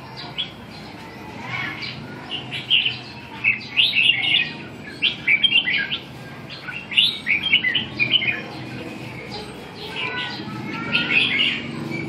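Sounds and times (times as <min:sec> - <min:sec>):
bulbuls singing warbled phrases: 0:00.0 - 0:12.0.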